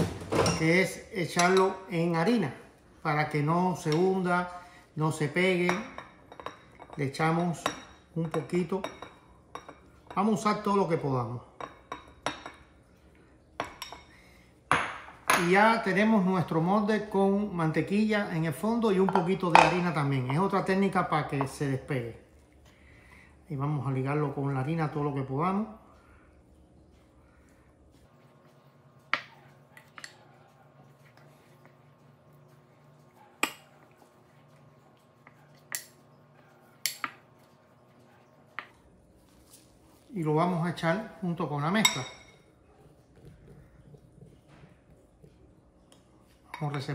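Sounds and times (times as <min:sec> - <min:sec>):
glass bowl clinking: 0:00.3 - 0:02.1, 0:05.5 - 0:11.0, 0:11.6 - 0:12.9, 0:13.6 - 0:15.9, 0:18.4 - 0:21.8, 0:40.7 - 0:42.6, 0:45.9 - 0:46.9.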